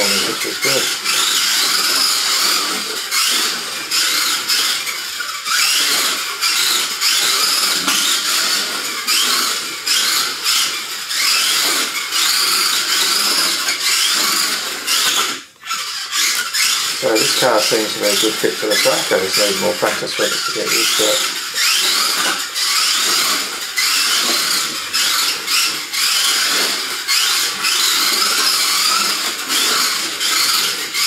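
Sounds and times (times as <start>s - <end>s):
toy car electric motor whining: 0.0s - 31.0s.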